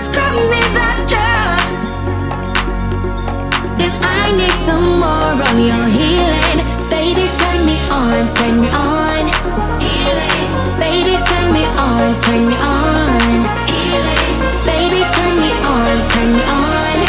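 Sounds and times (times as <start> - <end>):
pop song with beat and bass: 0.0 - 17.0.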